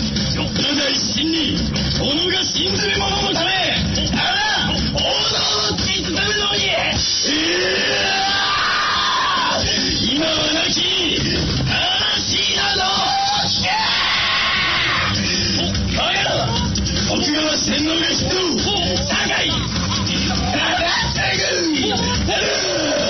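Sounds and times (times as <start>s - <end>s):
song with yelled vocals: 0.0s - 23.0s.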